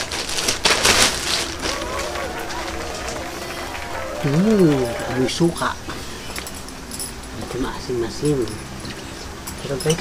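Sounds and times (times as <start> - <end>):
man humming: 1.2 - 5.4.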